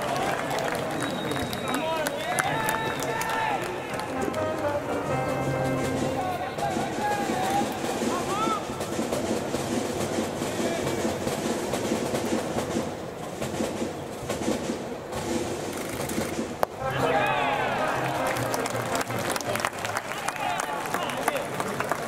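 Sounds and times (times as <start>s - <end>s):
crowd cheering: 0.0s - 8.9s, 16.7s - 22.0s.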